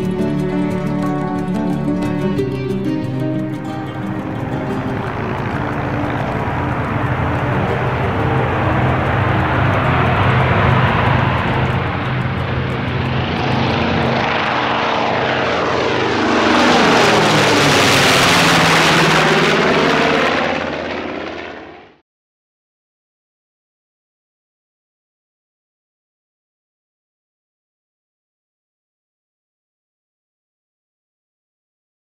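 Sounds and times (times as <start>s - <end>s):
propeller plane engines passing overhead: 0.0s - 22.0s.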